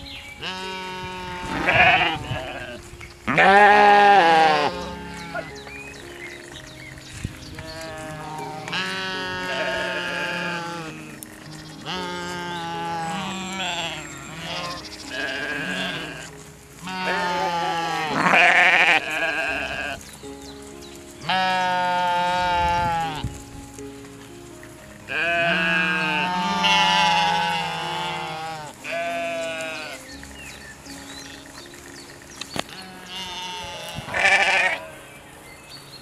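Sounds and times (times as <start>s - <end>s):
background music with sustained notes: 0.0s - 36.0s
young goats bleating: 0.3s - 5.9s, 7.5s - 20.3s, 21.2s - 23.4s, 25.1s - 31.0s, 32.6s - 35.2s.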